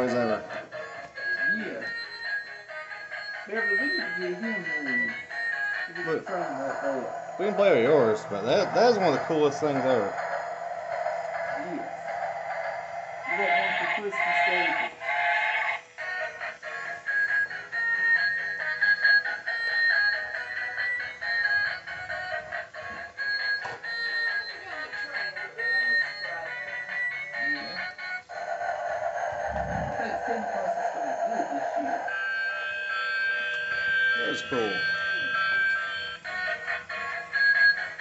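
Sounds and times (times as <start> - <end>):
toy speaker playing tinny tune: 0.0 - 10.3, 13.2 - 28.1, 32.0 - 38.0.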